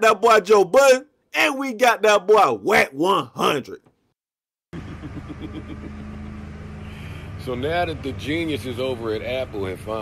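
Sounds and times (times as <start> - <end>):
steady low engine hum: 4.7 - 10.0.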